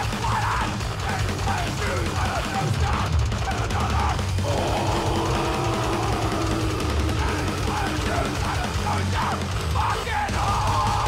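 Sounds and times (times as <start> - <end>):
distorted guitar and bass: 0.0 - 11.0
fast drums: 0.0 - 11.0
shouted vocals: 0.0 - 11.0
long held scream: 4.4 - 8.3.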